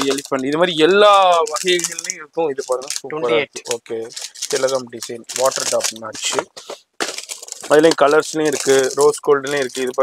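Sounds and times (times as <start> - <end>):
man talking: 0.0 - 6.8, 7.6 - 10.0
plastic-wrapped cards rattling: 0.0 - 10.0.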